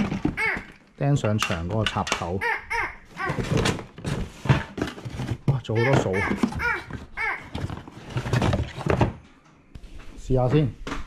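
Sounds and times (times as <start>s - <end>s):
cardboard packaging being handled: 3.1s - 9.2s
high-pitched voice: 5.7s - 7.6s.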